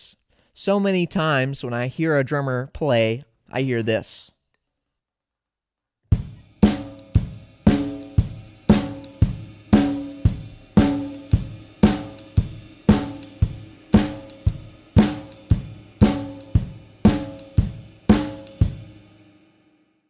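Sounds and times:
heavy snare and bass drum hits: 6.1s - 19.3s
ride cymbal and hi-hat: 6.2s - 19.4s.

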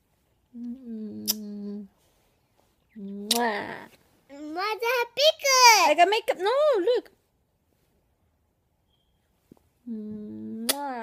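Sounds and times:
lip smack: 0.6s - 1.5s, 3.2s - 3.5s
person humming: 0.6s - 1.9s, 9.9s - 10.8s.

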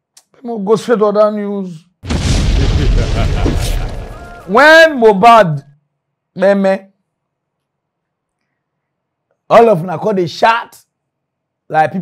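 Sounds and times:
cinematic boom with deep rumble: 2.1s - 4.3s.

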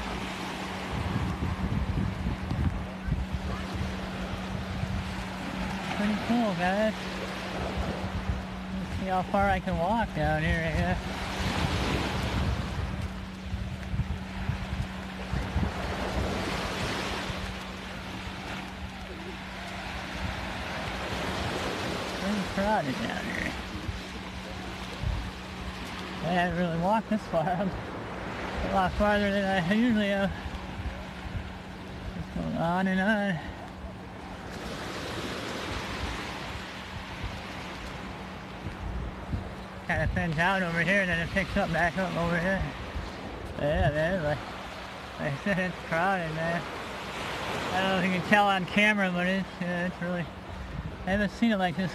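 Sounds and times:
wind buffeting microphone: 0.0s - 45.9s, 50.2s - 51.9s
surf washing up sandy shore: 0.0s - 51.9s.

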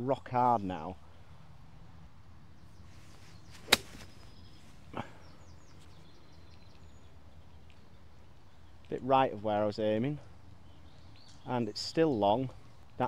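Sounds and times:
faint birds chirping: 0.0s - 13.0s
golf club striking ball: 3.5s - 4.6s.

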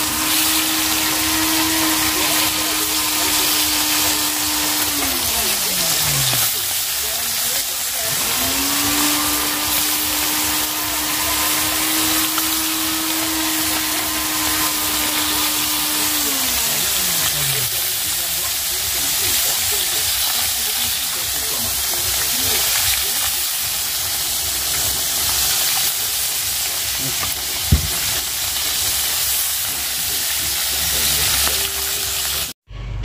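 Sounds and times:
fish sizzling in hot oil: 0.0s - 32.6s.

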